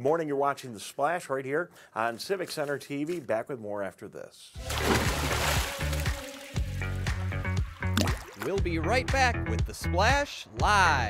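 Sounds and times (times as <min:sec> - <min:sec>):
water splash whoosh: 0:04.6 - 0:07.0.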